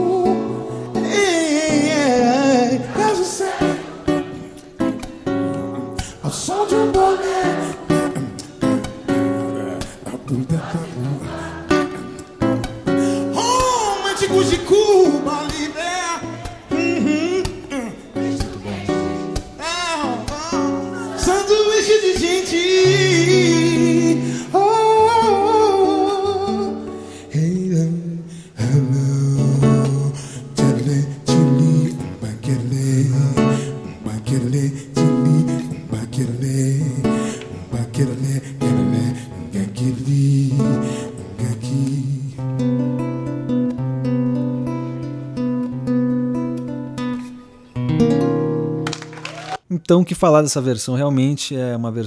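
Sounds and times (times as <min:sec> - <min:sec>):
man singing long notes: 0:00.0 - 0:04.5, 0:05.4 - 0:12.4, 0:13.3 - 0:42.4
nylon-string acoustic guitar: 0:00.0 - 0:49.2
strummed guitar chords: 0:00.0 - 0:49.2.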